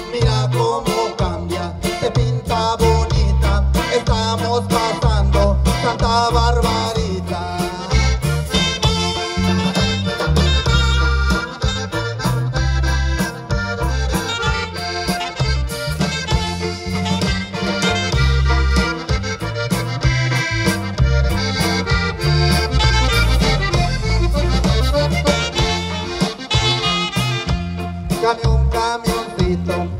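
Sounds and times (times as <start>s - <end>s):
accordion melody: 0.0s - 29.9s
bass and drum beat: 0.0s - 29.9s.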